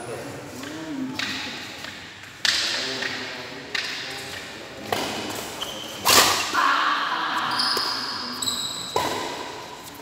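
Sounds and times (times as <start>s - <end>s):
racket hitting shuttlecock: 8.9s - 9.7s.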